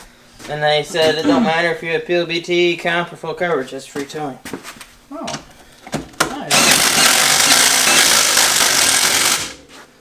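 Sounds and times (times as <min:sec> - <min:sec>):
impact wrench hammering: 0:06.2 - 0:09.6.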